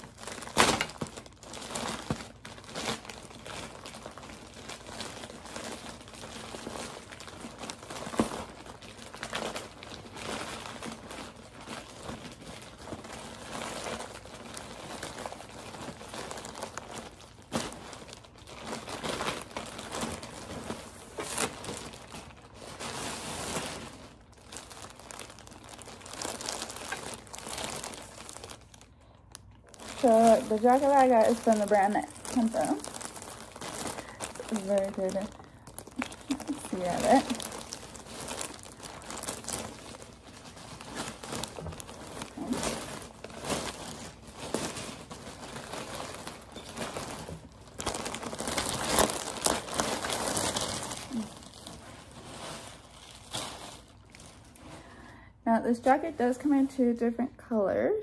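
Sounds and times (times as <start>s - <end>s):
plastic bag crinkling and rustling: 0.0s - 57.6s.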